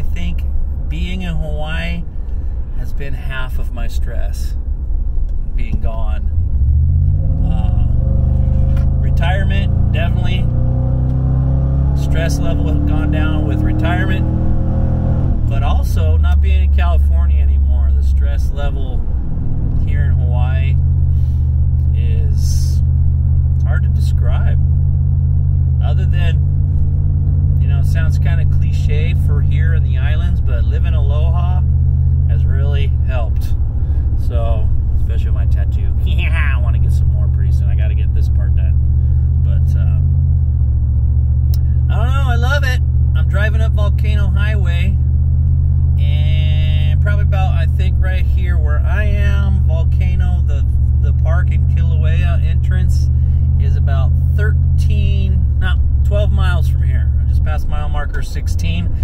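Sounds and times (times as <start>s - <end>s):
car engine and road drone: 0.0s - 59.0s.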